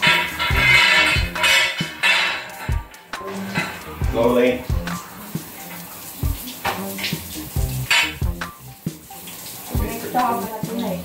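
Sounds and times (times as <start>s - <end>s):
metal poles clinking: 0.0s - 4.0s, 6.7s - 8.4s
background music with low beat: 0.0s - 11.0s.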